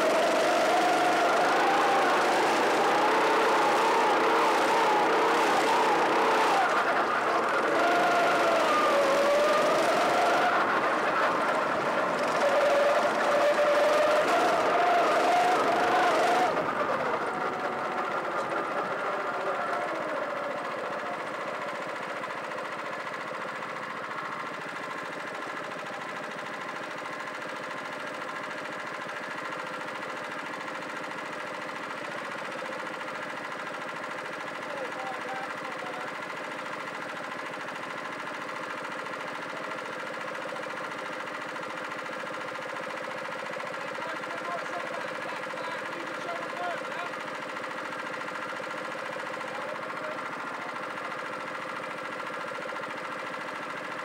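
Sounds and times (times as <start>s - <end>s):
kart engine slowing and idling: 0.0s - 54.0s.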